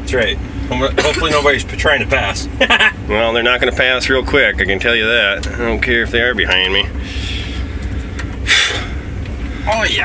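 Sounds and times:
engine rumble inside cab: 0.0s - 10.0s.

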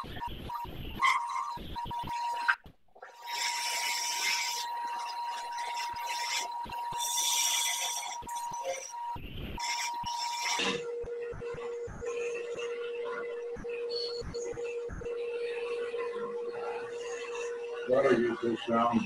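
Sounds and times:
turning tool cutting wood: 3.1s - 8.9s, 9.6s - 10.8s
wood lathe whining: 3.2s - 8.9s.

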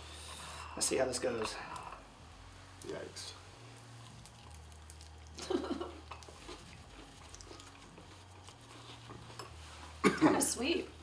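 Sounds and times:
low room hum: 0.0s - 11.0s
faint chewing: 3.7s - 10.0s.

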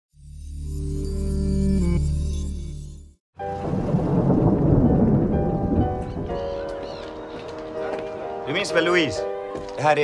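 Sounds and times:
deep rumble: 3.6s - 6.4s
held orchestral score tones: 4.7s - 10.0s.

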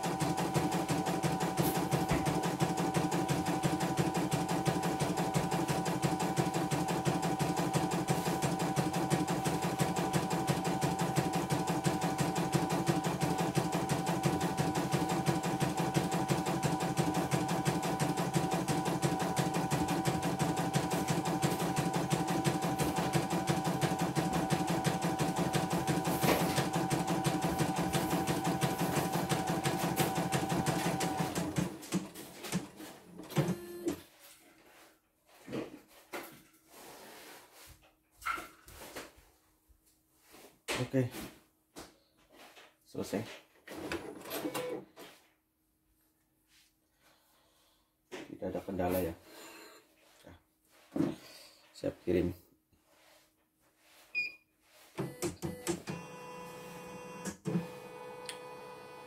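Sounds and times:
embroidery machine stitching: 0.0s - 34.0s.

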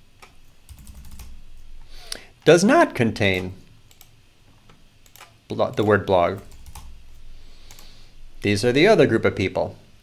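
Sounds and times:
computer keyboard typing: 0.7s - 1.4s, 3.9s - 4.1s, 5.0s - 6.9s, 7.7s - 7.9s.

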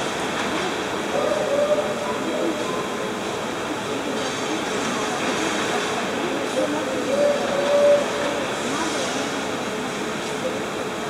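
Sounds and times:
train wheels rolling on track: 0.0s - 11.0s.

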